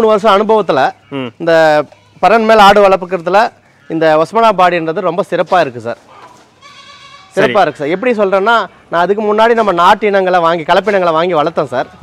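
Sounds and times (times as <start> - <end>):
man's voice: 0.0 - 6.0, 7.4 - 12.0
goat bleating: 1.0 - 2.8, 6.6 - 8.0.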